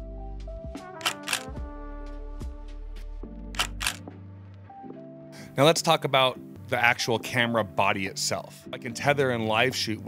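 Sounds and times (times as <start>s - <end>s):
background music with low bass: 0.0s - 10.0s
camera shutter double click: 1.0s - 1.6s, 3.6s - 4.1s.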